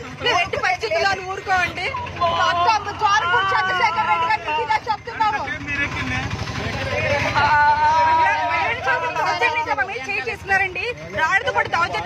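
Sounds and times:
vehicle rumble: 0.0s - 12.0s
woman talking: 0.2s - 5.4s.

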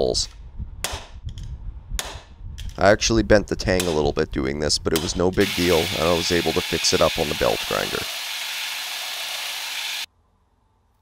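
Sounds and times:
belt grinder grinding metal: 5.4s - 10.1s.

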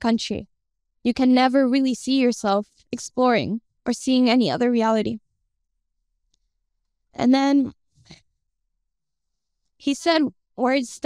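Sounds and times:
woman speaking into microphone: 1.1s - 5.2s, 7.2s - 7.7s, 9.9s - 11.0s.

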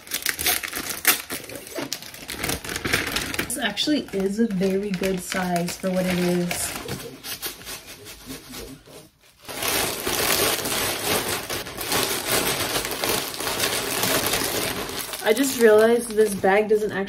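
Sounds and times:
plastic bag crinkling: 0.0s - 17.0s.

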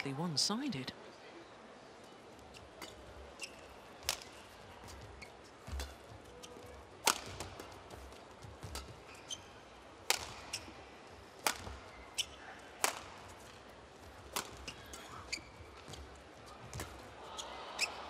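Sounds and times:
shoe squeaks: 2.4s - 3.9s, 4.6s - 6.8s, 8.7s - 9.7s, 11.9s - 12.5s, 14.5s - 18.0s
rackets striking shuttlecock: 2.8s - 5.0s, 5.6s - 9.0s, 10.0s - 10.7s, 11.4s - 16.1s.

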